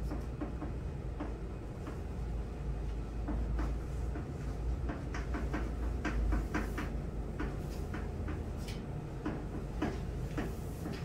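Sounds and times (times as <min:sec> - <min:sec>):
steady low hum: 0:00.0 - 0:11.0
chalk tapping and scraping on chalkboard: 0:03.2 - 0:11.0.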